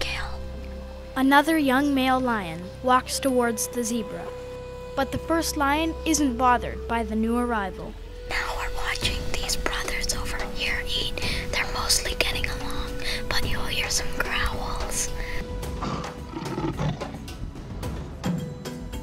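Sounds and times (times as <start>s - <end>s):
background music steady note: 0.0s - 19.0s
person whispering: 11.4s - 15.4s.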